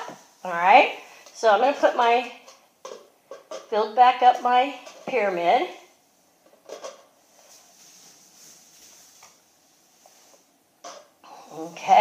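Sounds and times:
plastic cups tapping and clicking: 2.4s - 3.8s.

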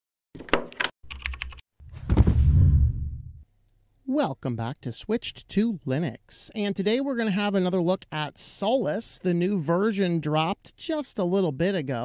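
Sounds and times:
heavy low boom: 2.0s - 3.4s.

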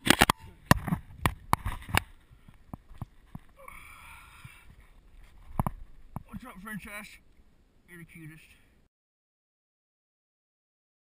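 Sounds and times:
breathy hiss: 3.6s - 4.9s.

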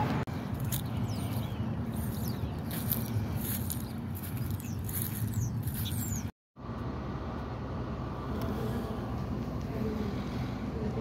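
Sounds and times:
traffic rumble: 0.0s - 11.0s.

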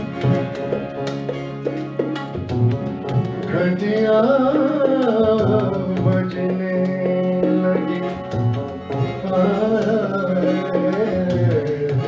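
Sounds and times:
electric guitar melody: 0.0s - 12.0s
harmonium: 0.0s - 12.0s.

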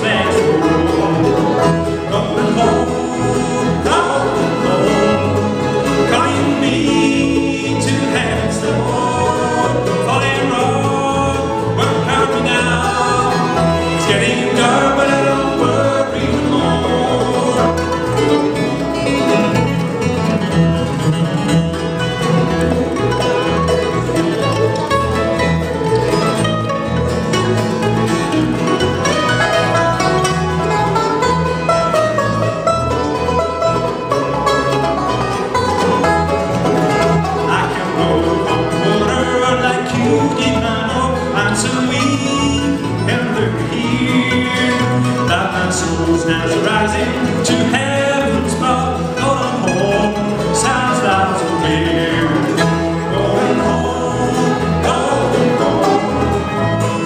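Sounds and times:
acoustic guitars: 0.0s - 57.0s
banjo: 0.0s - 57.0s
fiddle: 0.0s - 57.0s
mandolin: 0.0s - 57.0s.

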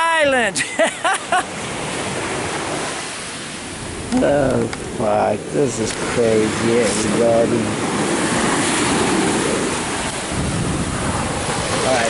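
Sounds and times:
sea surf breaking on shore: 0.0s - 12.0s.

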